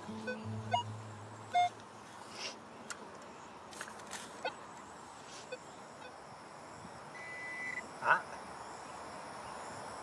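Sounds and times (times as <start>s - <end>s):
background music low notes: 0.0s - 1.8s
metal detector beeps: 0.1s - 1.8s, 7.2s - 7.8s.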